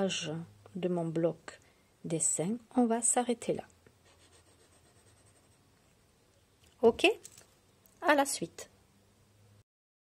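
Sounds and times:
pencil scratching on paper: 4.0 - 5.6.

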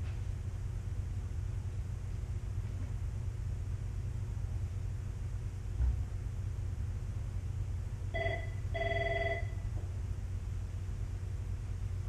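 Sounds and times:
steady low hum: 0.0 - 12.0
electronic warbling ringtone: 8.2 - 9.6.

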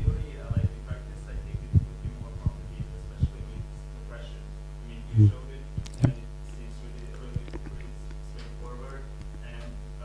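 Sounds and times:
soft low thumps: 0.0 - 3.8
low electrical hum: 0.0 - 10.0.

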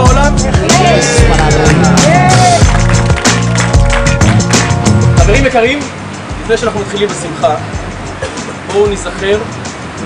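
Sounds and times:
music with heavy bass beat: 0.0 - 5.6
person singing: 0.7 - 2.6.

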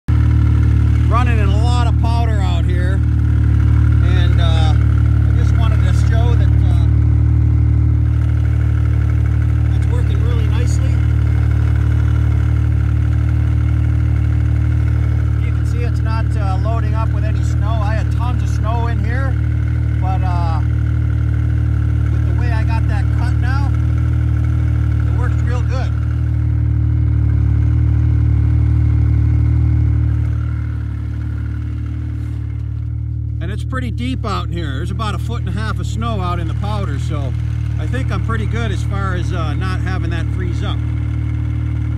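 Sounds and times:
snowmobile engine idling: 0.0 - 41.9.

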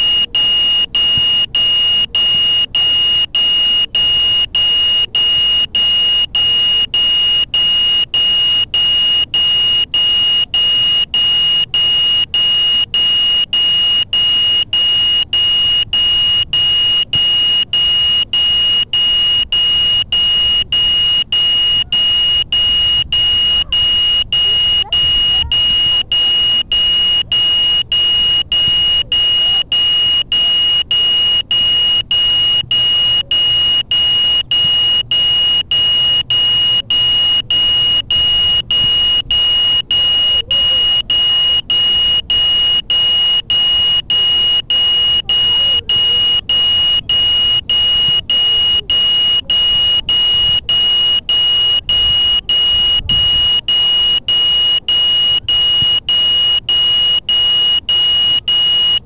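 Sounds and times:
high-pitched alarm buzzer: 0.0 - 59.0.

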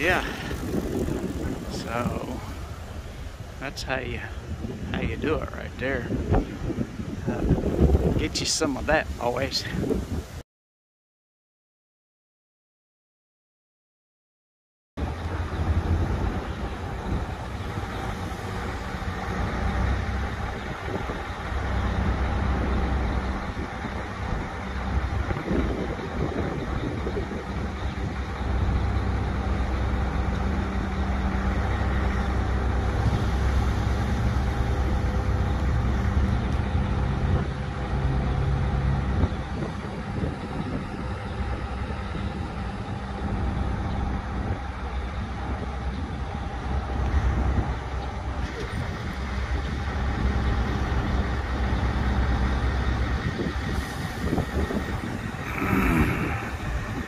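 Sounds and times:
crane diesel engine revving: 15.0 - 57.0.

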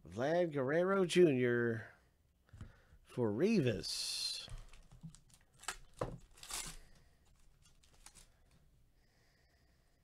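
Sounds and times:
faint handling of cards: 4.4 - 8.7
foil wrapper tearing and crinkling: 4.6 - 8.3.

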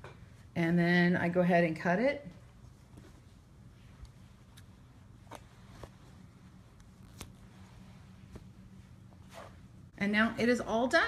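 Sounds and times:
soft rustle: 2.3 - 9.9.

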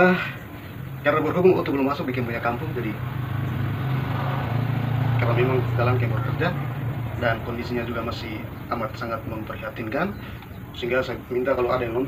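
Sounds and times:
engine running steadily: 0.0 - 12.0.

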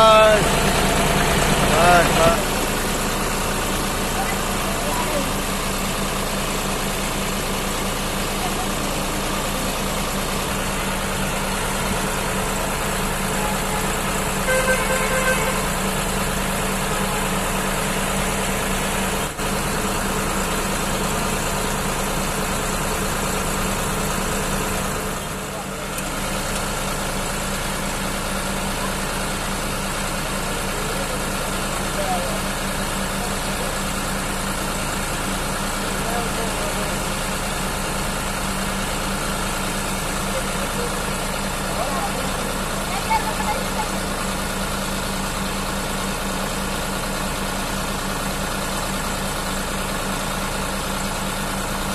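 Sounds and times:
tractor diesel engine idling: 0.0 - 51.9.

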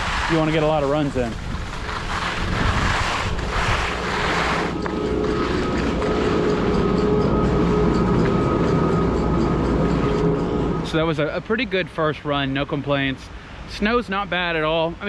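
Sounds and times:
skis sliding on wet snow: 0.0 - 6.9
chairlift machinery hum and whine: 0.0 - 13.6.

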